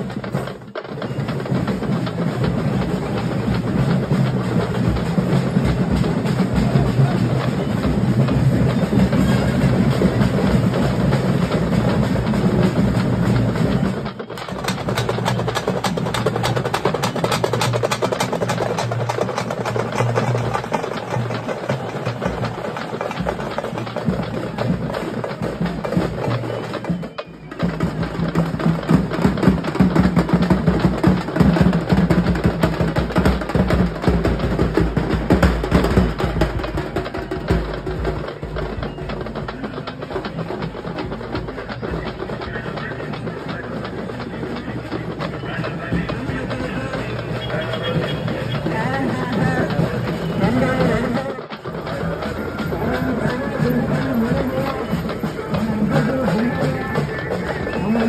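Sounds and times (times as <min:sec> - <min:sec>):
fast drumming music: 0:00.0 - 0:58.0.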